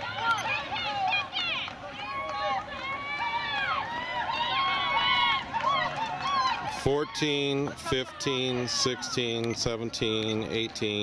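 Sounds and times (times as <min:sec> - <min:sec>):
spectators yelling encouragement: 0:00.0 - 0:09.6.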